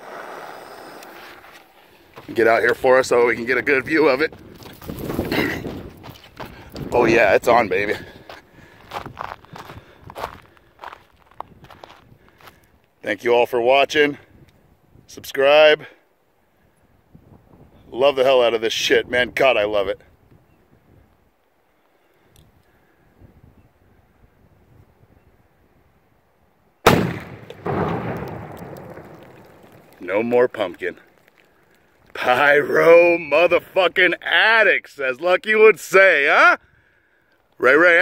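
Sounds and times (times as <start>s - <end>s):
footsteps crunching on gravel: 1.2s - 3.0s, 4.3s - 12.7s, 28.1s - 32.2s
loud explosion blast: 26.9s - 30.0s.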